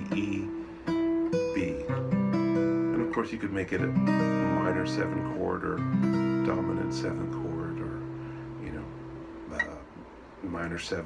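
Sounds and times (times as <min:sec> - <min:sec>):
acoustic guitar chord: 0:00.0 - 0:09.9.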